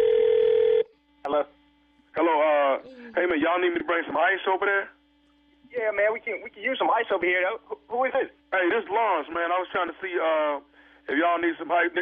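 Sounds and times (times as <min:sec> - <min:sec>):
steady telephone tone: 0:00.0 - 0:00.9
faint low hum: 0:00.0 - 0:12.0.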